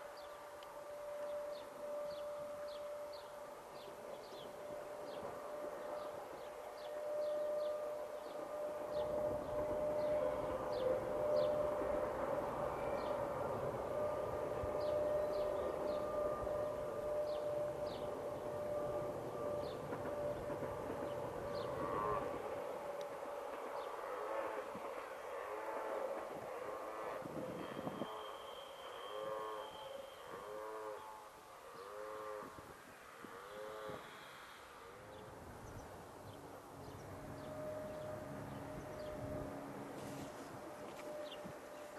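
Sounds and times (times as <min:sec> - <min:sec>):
electric train running past: 0:00.0 - 0:41.9
locomotive whine: 0:00.0 - 0:41.9.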